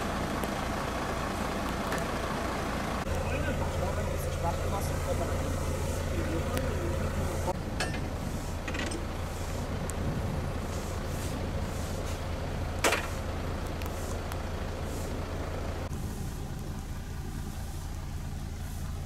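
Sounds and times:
truck engine humming: 0:00.0 - 0:19.0.

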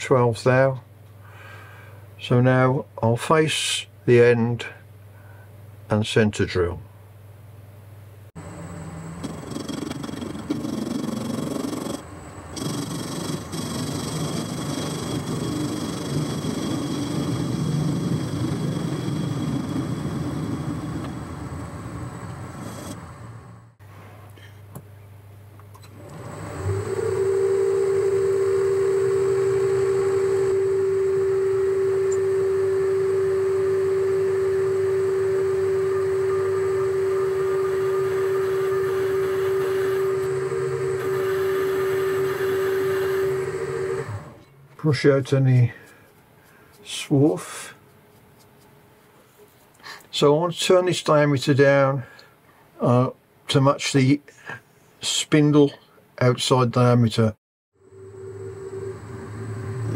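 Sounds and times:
drill high whine: 0:08.4 - 0:23.8, 0:26.0 - 0:44.5, 0:57.8 - 0:59.9
metal lathe cutting: 0:13.7 - 0:23.6, 0:26.0 - 0:44.4, 0:57.9 - 0:59.9.

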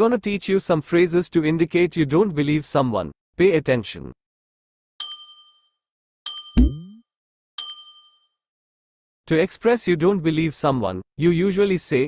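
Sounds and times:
bright chime dings: 0:05.0 - 0:05.7, 0:06.3 - 0:07.0, 0:07.6 - 0:08.3.

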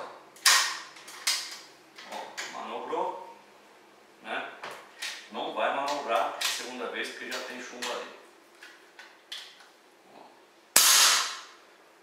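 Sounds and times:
air pistol shot: 0:10.8 - 0:11.5.

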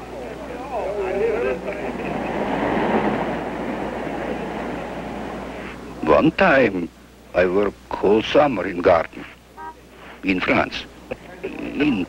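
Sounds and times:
streetcar rumbling on tracks: 0:01.4 - 0:05.6.

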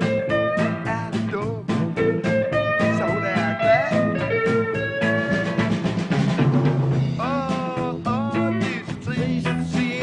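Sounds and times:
electric guitar bending notes: 0:00.0 - 0:07.1
bass: 0:00.0 - 0:10.0
drum kit: 0:00.0 - 0:10.0.

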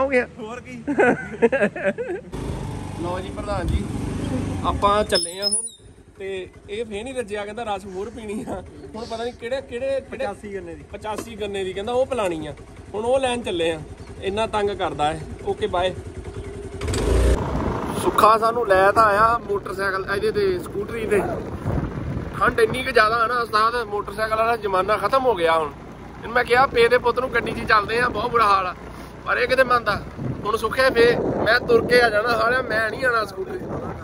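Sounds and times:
motor scooter running: 0:02.2 - 0:34.0
man talking: 0:06.2 - 0:16.0, 0:17.9 - 0:21.5, 0:22.3 - 0:34.0
wind rumbling on microphone: 0:17.3 - 0:23.9, 0:29.6 - 0:34.0.

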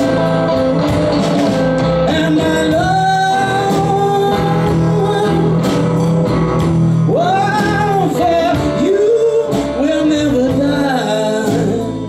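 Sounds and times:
blues trio playing: 0:00.0 - 0:12.0
lead guitar bending notes: 0:00.0 - 0:12.0.

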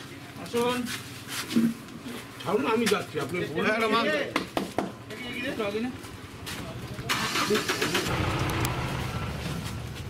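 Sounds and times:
vehicle engine running: 0:06.3 - 0:10.0.

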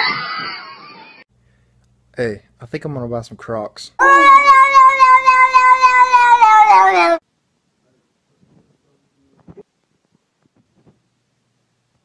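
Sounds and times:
cat yowling: 0:04.0 - 0:07.2.

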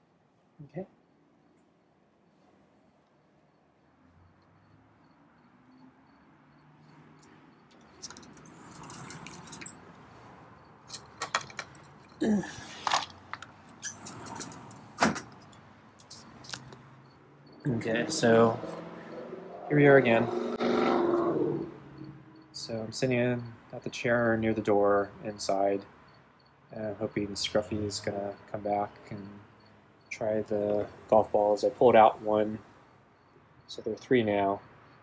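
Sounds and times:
golf balls clicking and knocking: 0:07.2 - 0:17.0.

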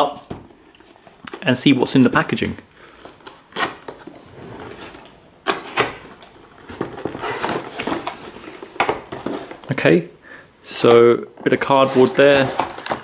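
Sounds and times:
cardboard scraping rustle: 0:03.6 - 0:09.6, 0:11.6 - 0:13.0.

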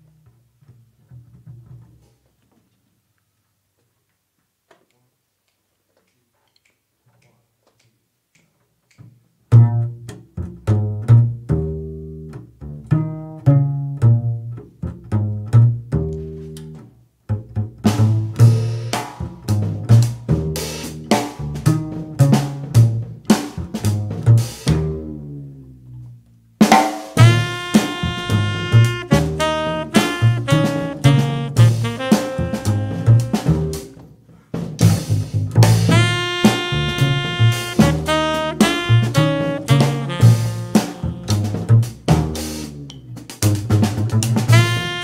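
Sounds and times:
plucked double bass: 0:00.0 - 0:02.0, 0:09.5 - 0:26.5, 0:27.2 - 0:45.0
drum kit cymbals: 0:17.9 - 0:24.8, 0:26.6 - 0:45.0.

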